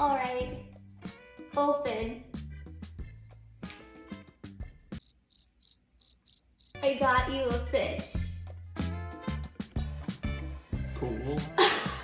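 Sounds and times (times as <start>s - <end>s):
cricket chirping sound effect: 5.0s - 6.8s.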